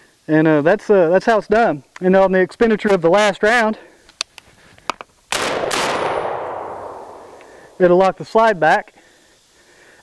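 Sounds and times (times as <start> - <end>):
shotgun blast with echo: 5.3 - 8.0.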